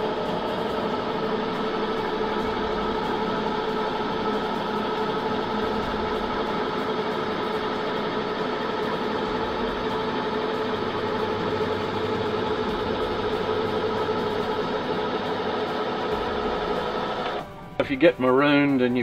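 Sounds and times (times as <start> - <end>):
electric motor humming and whining: 0.0 - 17.8.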